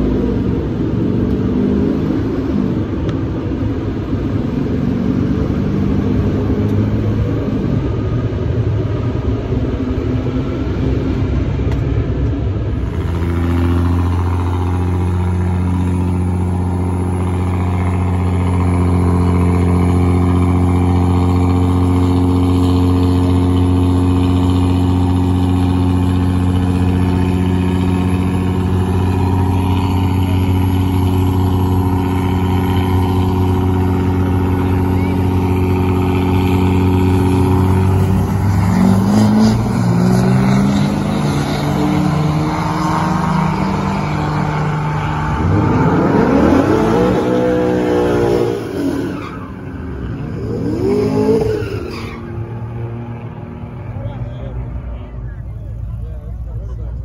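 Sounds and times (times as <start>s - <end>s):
diesel truck engines droning: 0.0s - 57.0s
trucks revving and launching: 0.0s - 57.0s.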